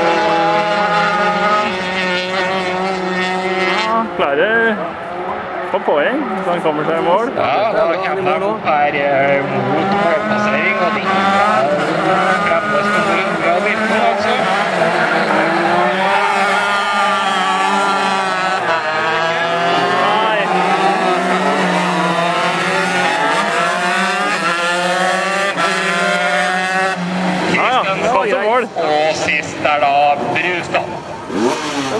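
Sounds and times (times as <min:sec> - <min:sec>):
kart engines racing: 0:00.0 - 0:31.9.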